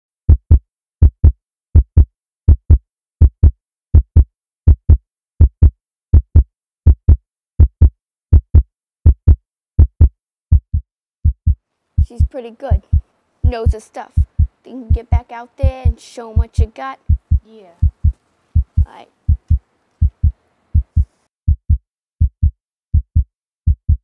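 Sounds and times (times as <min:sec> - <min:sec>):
heartbeat thumps: 0:00.3 - 0:24.0.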